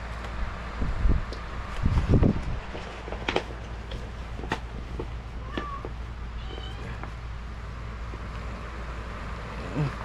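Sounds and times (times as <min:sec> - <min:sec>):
cat meowing: 0:05.4 - 0:07.2.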